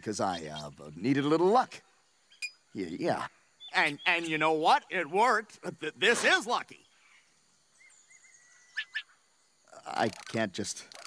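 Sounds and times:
man talking: 0.0s - 1.8s, 2.8s - 6.8s, 9.7s - 11.0s
bird chirps: 0.0s - 11.0s.

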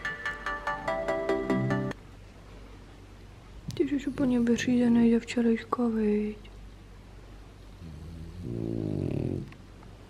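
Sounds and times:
dog grunting breath: 7.8s - 9.6s.

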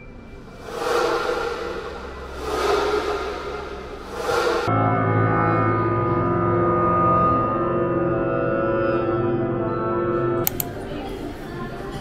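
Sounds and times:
whooshing swells: 0.0s - 5.0s
low sustained electronic tones: 0.0s - 10.4s.

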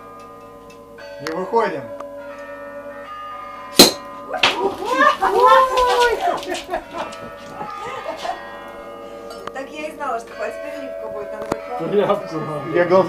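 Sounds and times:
sword cracking bottle neck: 3.8s - 4.1s
loud excited voices: 4.5s - 6.6s.

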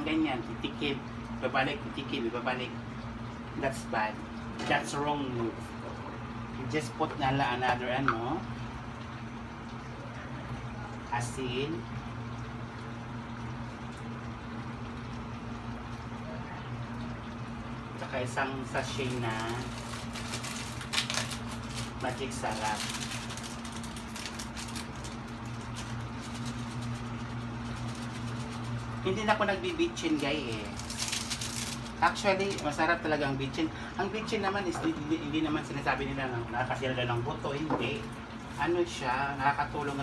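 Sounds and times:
faint steady hum: 0.0s - 40.0s
stew bubbling in a wok: 0.0s - 40.0s.

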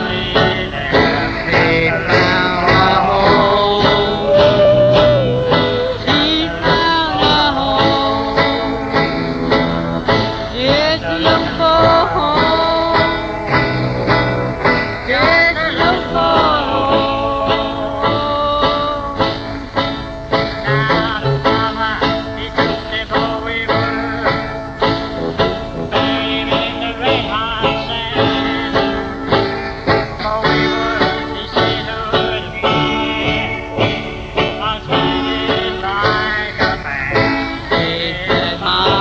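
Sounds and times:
skiffle band music: 0.0s - 39.0s
strummed acoustic guitar: 0.0s - 39.0s.

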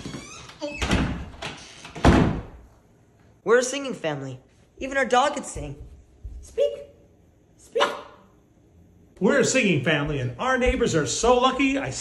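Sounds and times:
wooden closet door banging: 0.0s - 2.6s.

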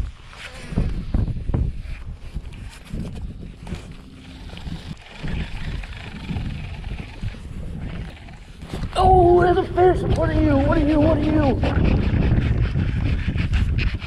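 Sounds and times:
wind buffeting microphone: 0.0s - 14.0s.

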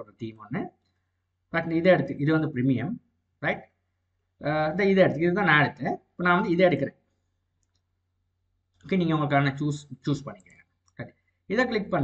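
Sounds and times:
man speaking: 0.0s - 0.8s, 1.5s - 3.8s, 4.4s - 7.0s, 8.8s - 12.0s.

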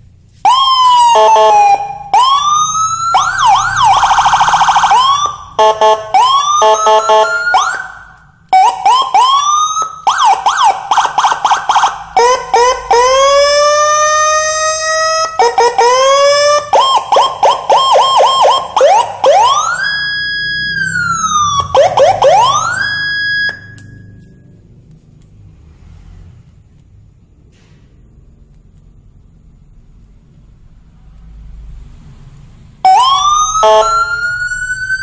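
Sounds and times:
electronic siren: 0.4s - 24.5s, 32.8s - 35.0s.

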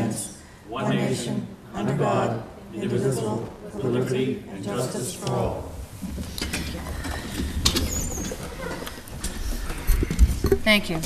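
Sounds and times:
office chairs clicking and rattling: 5.3s - 11.0s.

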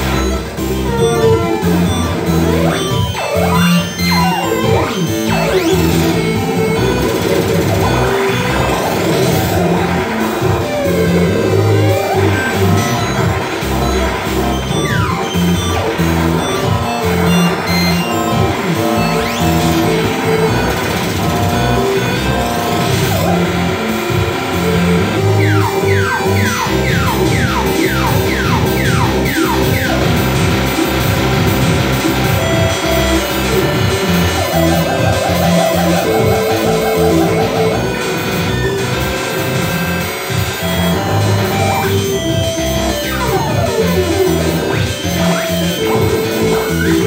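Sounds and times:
experimental electronic music: 0.0s - 47.0s.

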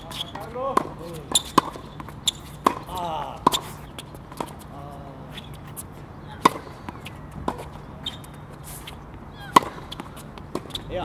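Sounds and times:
tennis racket hitting ball: 0.0s - 4.7s, 5.4s - 10.9s.

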